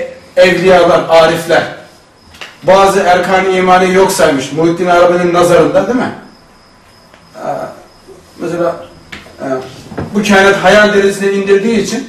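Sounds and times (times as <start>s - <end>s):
man speaking: 0.0s - 1.9s, 2.6s - 6.3s, 7.4s - 12.0s.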